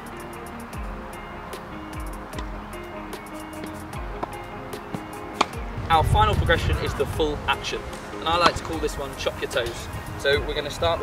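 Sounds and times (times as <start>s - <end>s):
background music with sustained tones: 0.0s - 11.0s
tennis racket hitting ball: 2.3s - 2.6s, 3.2s - 5.7s.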